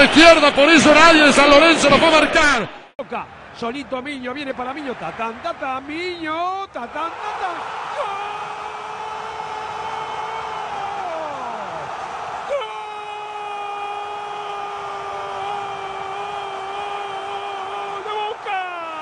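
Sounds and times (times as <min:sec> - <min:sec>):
crowd roar: 0:06.8 - 0:19.0
commentator shouting: 0:12.5 - 0:19.0.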